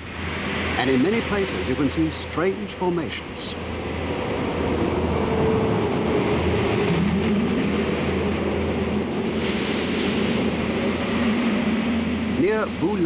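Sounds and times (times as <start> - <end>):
road vehicle driving drone: 0.0 - 13.0.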